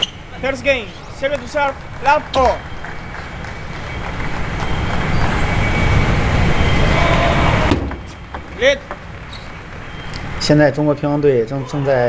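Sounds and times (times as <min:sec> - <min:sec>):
loud crowd noise: 0:00.0 - 0:12.0.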